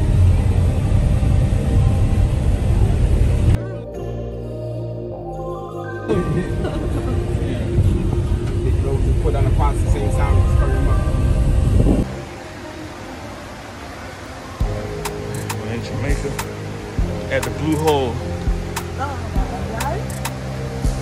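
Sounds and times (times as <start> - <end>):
road and engine rumble: 0.0 - 4.4, 6.1 - 21.0
background music: 0.0 - 21.0
people chatting: 6.1 - 11.0, 15.6 - 16.5, 17.3 - 18.2, 19.0 - 20.1.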